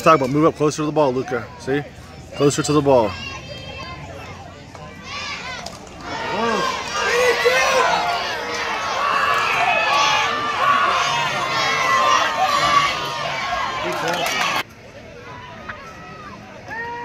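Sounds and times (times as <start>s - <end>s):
crowd shouting and cheering: 0.0s - 17.0s.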